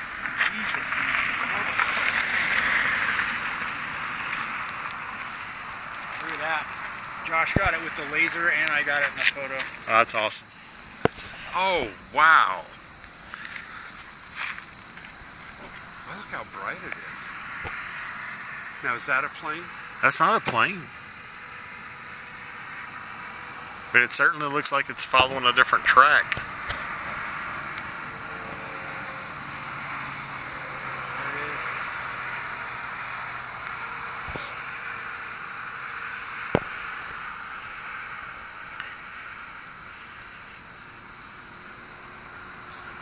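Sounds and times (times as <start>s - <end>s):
steady rushing noise: 0.0s - 20.8s
outdoor background hiss: 0.0s - 43.0s.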